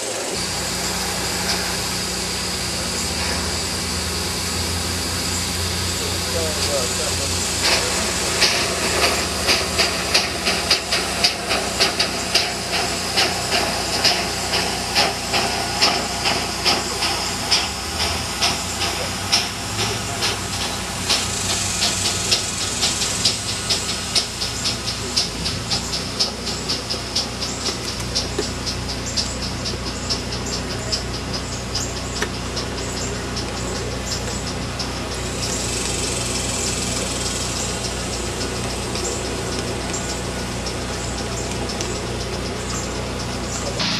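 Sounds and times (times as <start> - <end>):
model steam locomotive chuffing: 0.0 - 43.9
steam hissing: 0.0 - 43.9.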